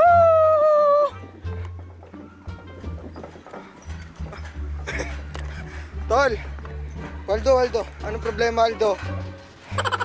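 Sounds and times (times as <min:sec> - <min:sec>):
footsteps on wooden planks: 0:01.2 - 0:07.2.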